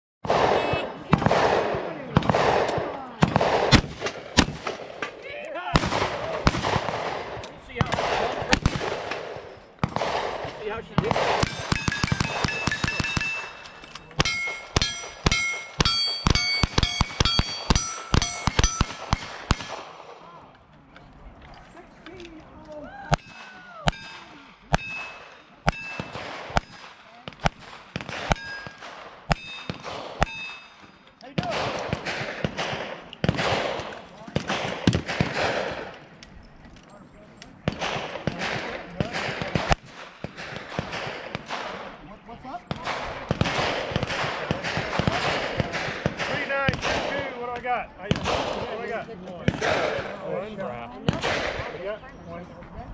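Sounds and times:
gunshots with echoing tail: 0.2s - 20.4s, 23.1s - 36.2s, 37.6s - 50.3s, 51.0s - 51.9s
steel plate clang: 11.4s - 19.5s.

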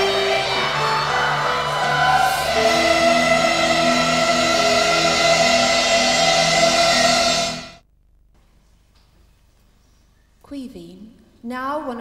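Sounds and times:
choir singing: 0.0s - 7.8s
instrumental ensemble playing: 0.0s - 7.8s.

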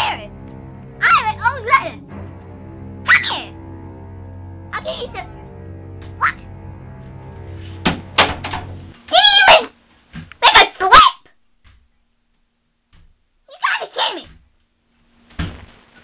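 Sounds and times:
low musical drone: 0.0s - 9.1s.

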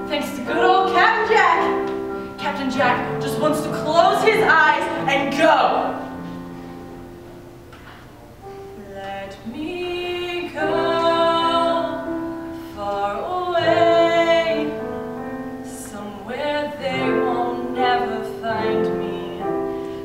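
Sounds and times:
woman singing: 0.0s - 6.0s, 8.8s - 19.8s
keyboard accompaniment: 0.0s - 20.0s.

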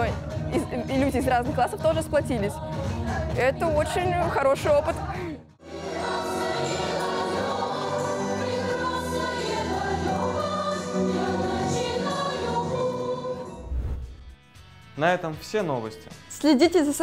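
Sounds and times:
choir singing held notes: 5.6s - 13.8s.

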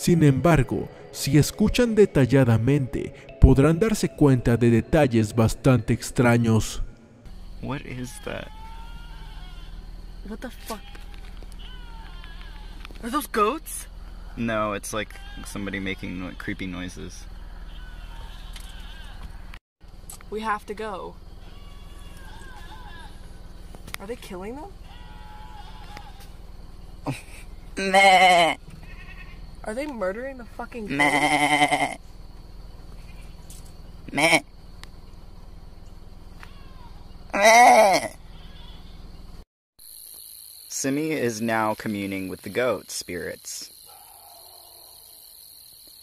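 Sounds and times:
goat-like bleating: 8.1s - 9.8s, 10.6s - 13.0s, 15.1s - 16.5s, 17.6s - 19.2s, 21.4s - 23.2s, 24.8s - 26.3s, 27.8s - 29.4s, 30.9s - 32.0s, 34.1s - 34.4s, 36.4s - 38.9s.

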